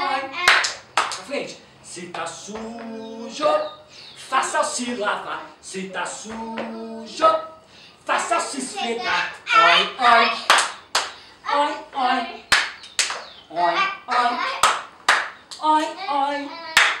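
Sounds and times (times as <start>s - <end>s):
voices chanting a children's song: 0.0s - 17.0s
hand claps: 0.4s - 1.3s, 10.5s - 11.2s, 12.5s - 13.3s, 14.6s - 15.9s, 16.8s - 17.0s.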